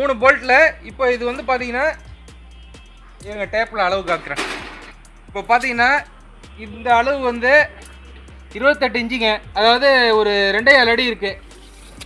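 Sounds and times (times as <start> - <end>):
person speaking: 5.4 - 7.8.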